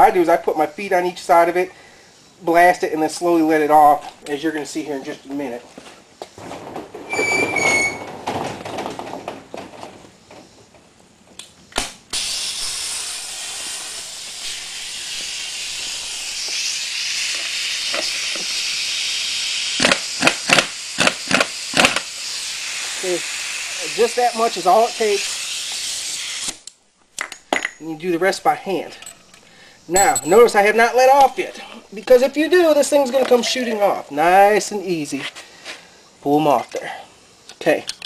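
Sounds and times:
impact wrench bursts: 12.1s - 26.6s
air impact wrench hissing: 12.1s - 26.8s.

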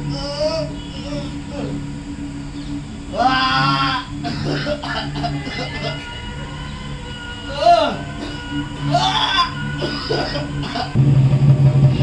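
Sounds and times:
steady held drone: 0.0s - 12.0s
loud cry dropping in pitch: 3.1s - 11.0s.

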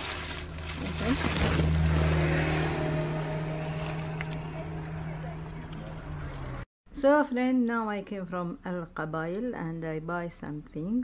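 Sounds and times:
food wrapping rustling: 0.0s - 2.4s.

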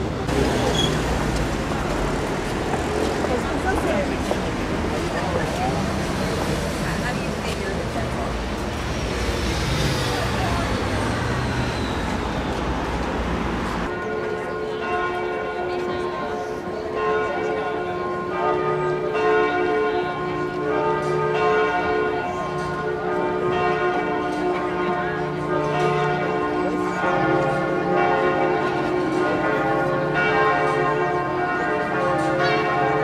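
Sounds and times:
church bells ringing a peal: 13.8s - 33.0s.

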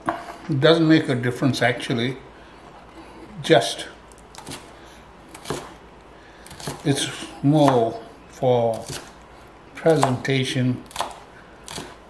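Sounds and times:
knife cutting on a board: 4.4s - 4.7s, 5.3s - 5.8s, 6.5s - 8.0s, 8.7s - 9.2s, 9.9s - 12.0s.

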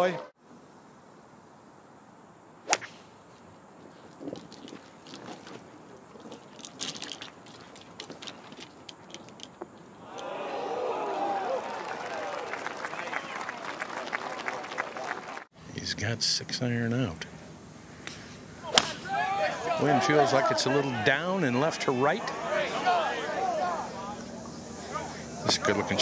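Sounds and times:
crowd cheering and shouting: 10.0s - 15.4s, 19.0s - 24.3s
golf club striking ball: 18.0s - 19.1s.

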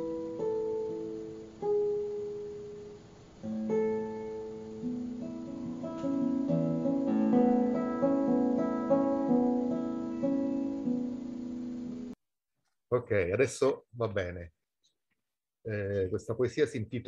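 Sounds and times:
classical guitar fingerstyle: 0.0s - 12.2s.

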